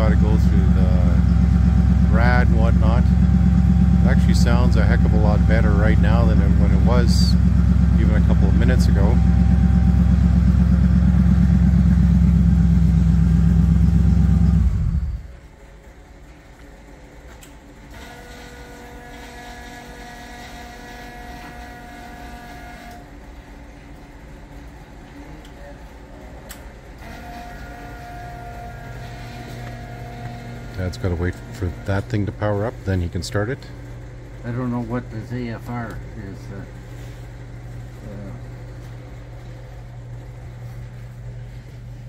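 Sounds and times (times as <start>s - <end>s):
snow vehicle engine idling: 0.0s - 15.3s
faint steady whine: 0.0s - 19.1s.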